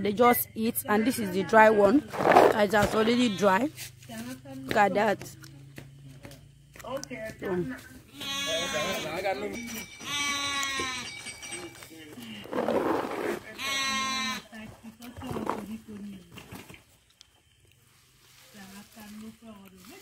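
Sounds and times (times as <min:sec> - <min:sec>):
sheep bleating: 0:02.8 - 0:03.6, 0:08.1 - 0:09.4, 0:10.0 - 0:11.2, 0:13.5 - 0:14.5.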